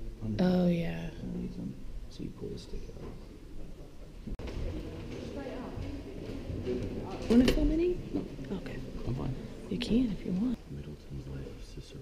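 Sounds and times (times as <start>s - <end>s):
indistinct chatter: 2.7s - 12.0s.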